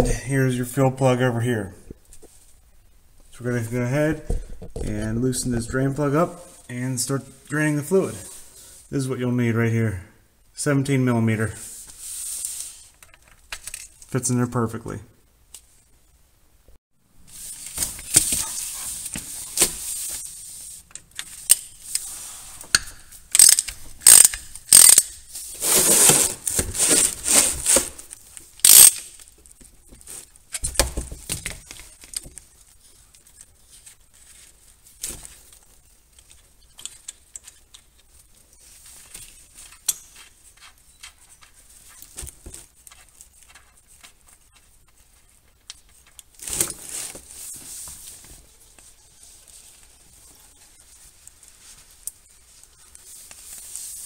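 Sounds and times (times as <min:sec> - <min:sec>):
ratchet clicking: 0:23.3 - 0:25.1, 0:28.6 - 0:29.1.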